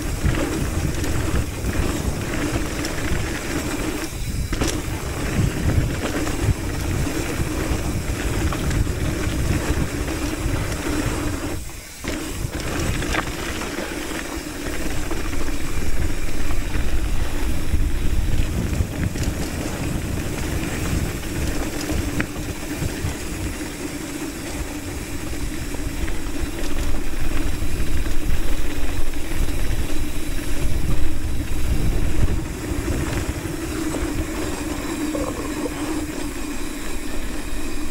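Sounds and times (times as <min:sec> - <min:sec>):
wind on microphone: 0:00.0 - 0:13.8, 0:14.7 - 0:37.9
bike tyres rolling on gravel: 0:00.0 - 0:37.9.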